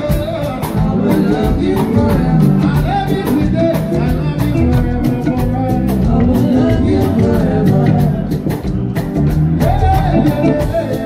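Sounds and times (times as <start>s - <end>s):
person singing: 0.0s - 8.8s, 9.6s - 11.0s
live soul band: 0.0s - 11.0s.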